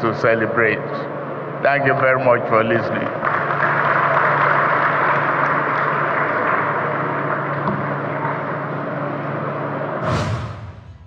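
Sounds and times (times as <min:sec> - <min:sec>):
audience applauding: 0:03.2 - 0:08.8.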